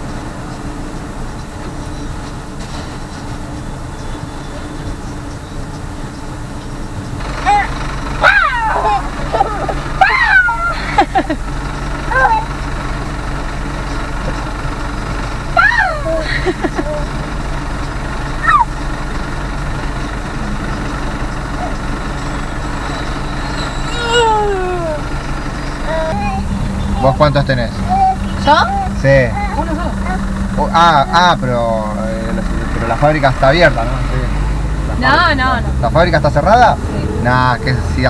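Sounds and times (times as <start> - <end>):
car engine hum and road noise: 0.0 - 38.0
baby squealing: 7.4 - 10.8, 12.1 - 12.5, 18.4 - 18.8, 23.4 - 31.3.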